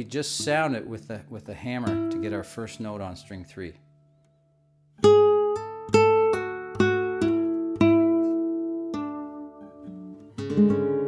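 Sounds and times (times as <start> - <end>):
guitar picked notes: 0.0 - 4.3, 5.0 - 11.0.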